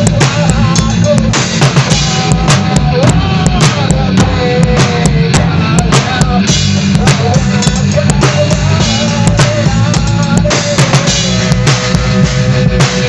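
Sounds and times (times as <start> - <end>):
drum kit: 0.0 - 13.0
electric bass: 0.0 - 13.0
electric guitar: 0.0 - 13.0.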